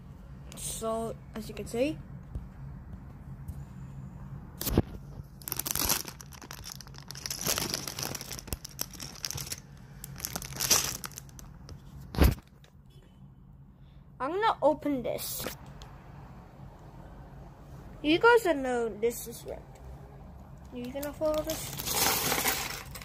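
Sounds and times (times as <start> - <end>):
plastic bags crinkling: 5.3 - 11.6, 21.3 - 23.0.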